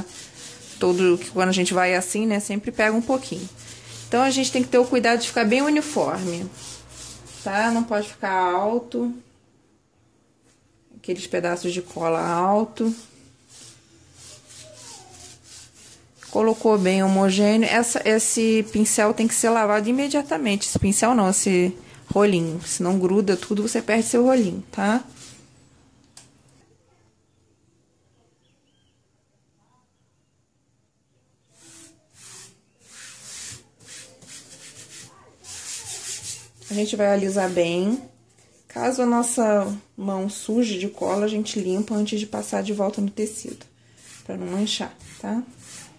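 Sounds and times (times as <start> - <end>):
foam roller rubbing: 0.0 - 8.2, 11.7 - 25.4, 31.6 - 38.1, 40.4 - 45.9.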